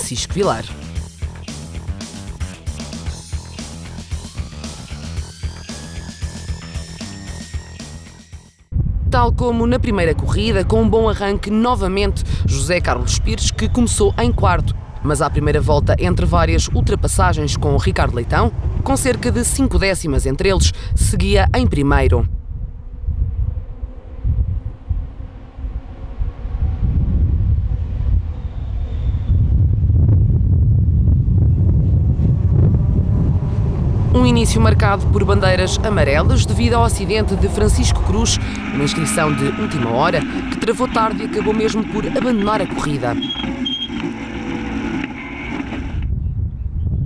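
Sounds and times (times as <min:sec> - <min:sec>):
wind buffeting microphone: 0:08.7 - 0:44.9, 0:45.6 - 0:47.0
race car engines passing: 0:32.1 - 0:46.1.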